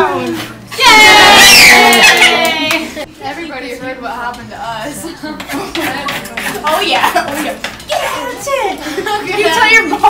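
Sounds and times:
girls chattering: 4.8s - 10.0s.

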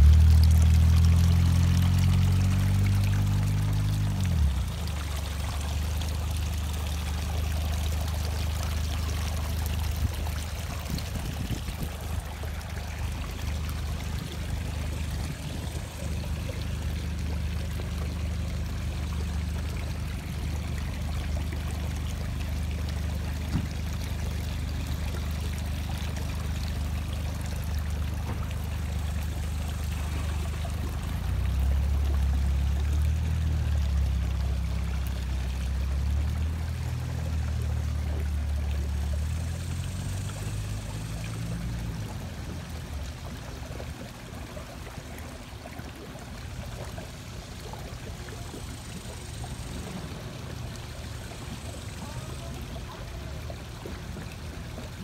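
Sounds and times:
constant low hum: 0.0s - 55.0s
water trickling into pond: 0.0s - 55.0s.

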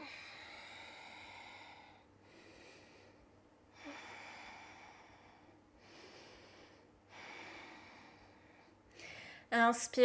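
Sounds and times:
woman breathing slowly: 0.0s - 9.5s.

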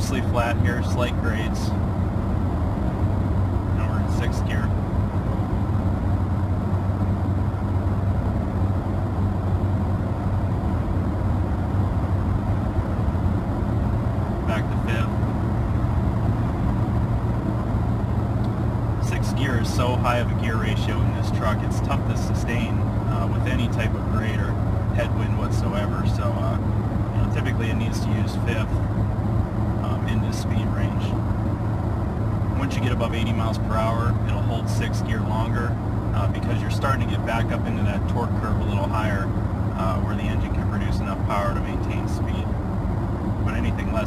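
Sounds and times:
car engine drone in cab: 0.0s - 44.0s.

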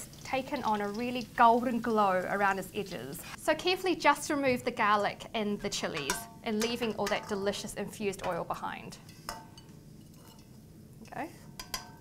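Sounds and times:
metal spatula clinking on wok: 5.9s - 7.4s, 11.6s - 12.0s.

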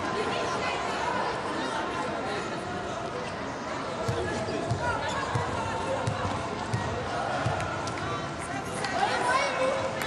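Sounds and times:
crowd chatter: 0.0s - 10.0s
volleyball bouncing on hard floor: 4.1s - 7.6s.

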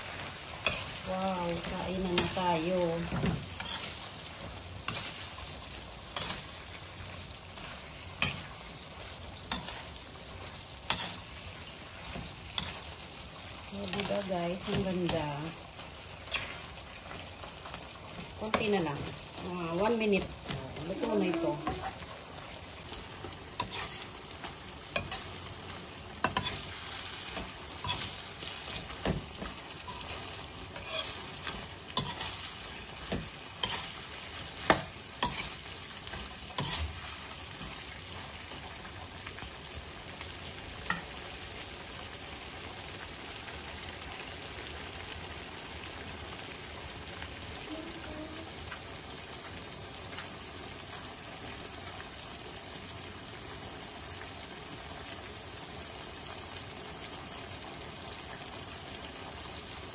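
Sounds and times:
utensil scraping a wok: 0.0s - 38.6s
shrimp sizzling in a wok: 0.0s - 59.9s.

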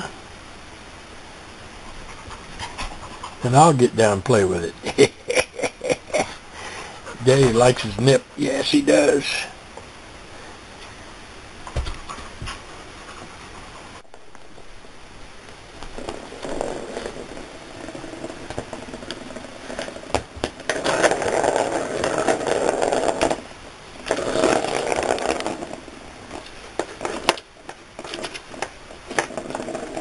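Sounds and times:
cat scratcher scraping and rattling: 15.9s - 30.0s.

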